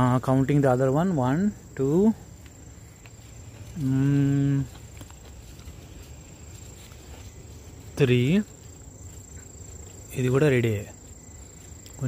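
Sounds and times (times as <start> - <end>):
crickets trilling: 0.0 - 12.0
low outdoor background: 0.0 - 12.0.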